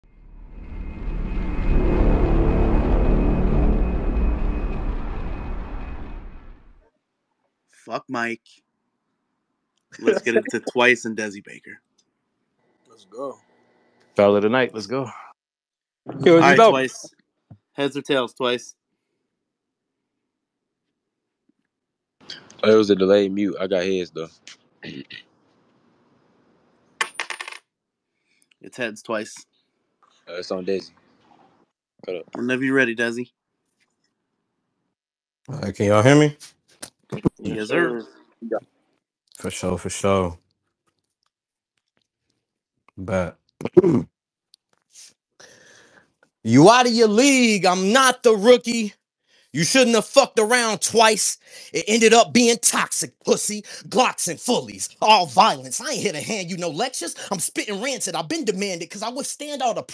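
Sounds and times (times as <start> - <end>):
deep rumbling cinematic swell: 0.1 - 6.8
faint high steady tone: 10.0 - 11.6, 16.2 - 17.1, 37.3 - 38.6
coin landing on hard surface: 27.0 - 27.6.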